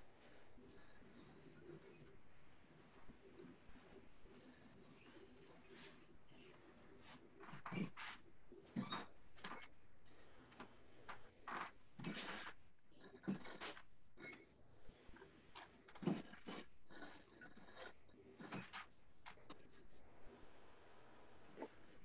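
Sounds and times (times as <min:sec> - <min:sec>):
faint knocks and rustles: 0:00.0 - 0:22.0.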